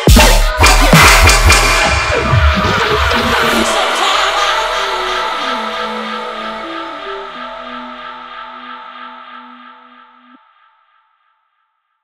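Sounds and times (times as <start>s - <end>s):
sustained synth chords: 0.0s - 10.4s.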